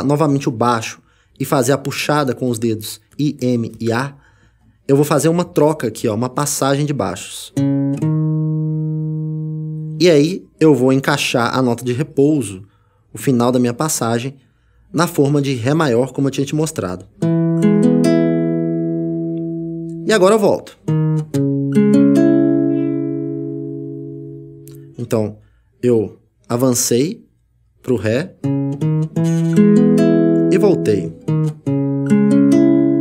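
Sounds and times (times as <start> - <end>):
classical guitar bass note ringing: 7.6 - 10.0, 17.2 - 20.0, 20.8 - 25.0, 28.4 - 33.0.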